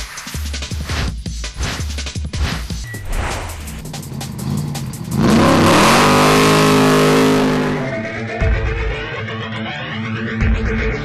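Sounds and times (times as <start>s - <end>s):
car engine accelerating hard: 3.3s - 8.4s
electronic music: 5.2s - 9.6s.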